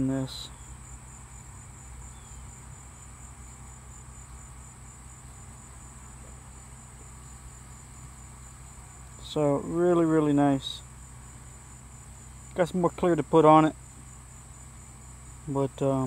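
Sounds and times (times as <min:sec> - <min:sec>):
faint low hum: 0:00.0 - 0:16.0
insects trilling: 0:00.0 - 0:16.0.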